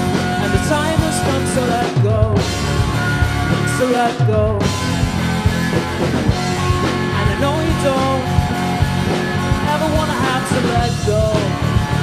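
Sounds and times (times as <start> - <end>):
bass guitar: 0.0 - 12.0
drum kit hits: 0.0 - 12.0
electric guitar: 0.0 - 12.0.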